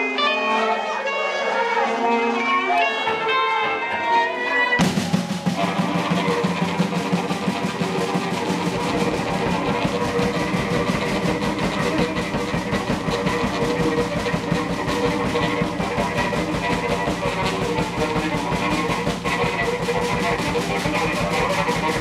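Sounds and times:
bowed cello: 0.0s - 22.0s
bowed violin: 0.0s - 22.0s
drum kit: 4.8s - 22.0s.

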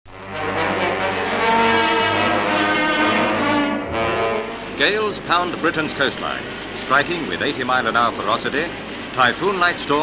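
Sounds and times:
brass band chords: 0.1s - 5.0s.

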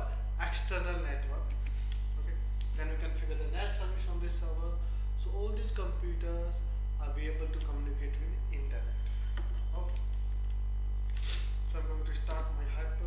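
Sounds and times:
low electrical mains hum: 0.0s - 13.0s
thin high whine: 0.0s - 13.0s.

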